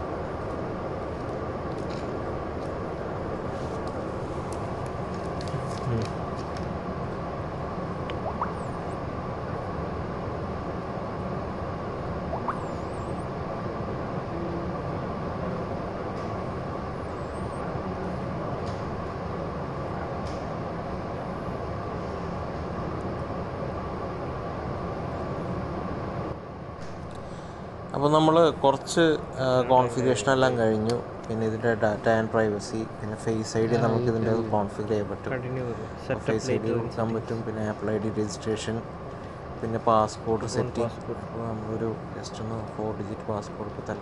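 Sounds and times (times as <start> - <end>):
droning background noise: 0.0 - 44.0.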